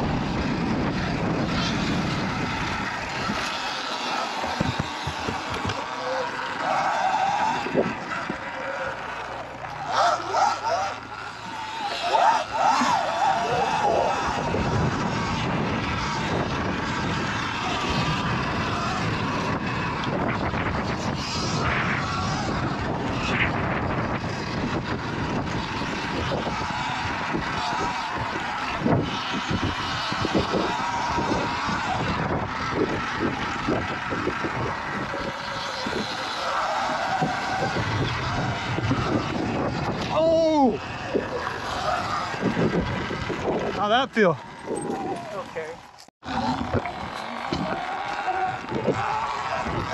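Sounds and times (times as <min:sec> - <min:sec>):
wind buffeting microphone: 0:00.0 - 0:06.6, 0:07.2 - 0:49.9
tyre and drivetrain noise: 0:00.0 - 0:49.9.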